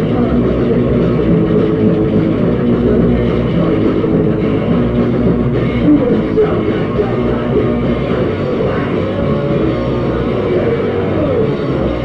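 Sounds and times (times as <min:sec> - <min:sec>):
bass guitar: 0:00.0 - 0:12.0
distorted electric guitar: 0:00.0 - 0:12.0
drums: 0:00.0 - 0:12.0.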